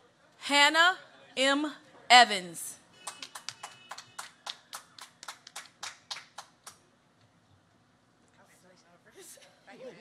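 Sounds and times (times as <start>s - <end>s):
hand clapping: 3.0s - 6.8s.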